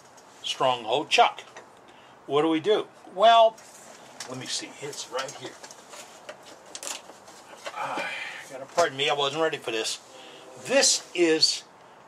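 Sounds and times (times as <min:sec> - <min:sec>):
rustle: 0:00.0 - 0:02.6, 0:03.2 - 0:12.0
clicks of tools rummaged: 0:03.6 - 0:07.8
man saying uh: 0:10.6 - 0:11.6.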